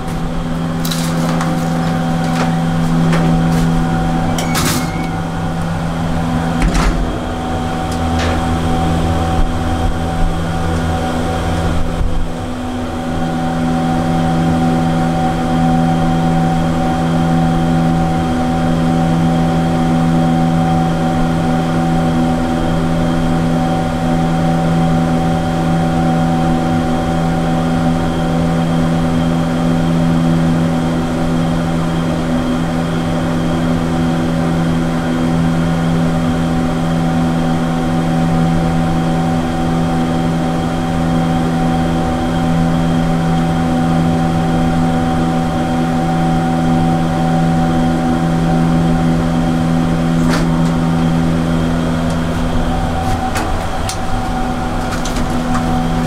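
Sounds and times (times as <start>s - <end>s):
elevator car humming: 0.0s - 56.0s.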